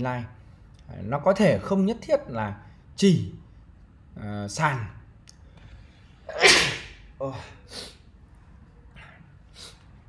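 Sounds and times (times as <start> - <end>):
man sneezing: 6.3 - 8.0.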